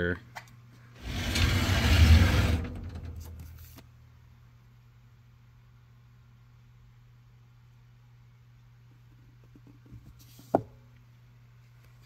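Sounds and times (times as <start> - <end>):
rushing scraping noise: 1.0 - 3.4.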